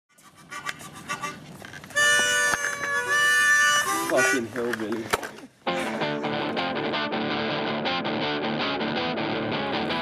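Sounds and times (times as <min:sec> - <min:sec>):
harmonica playing: 0:00.1 - 0:04.7.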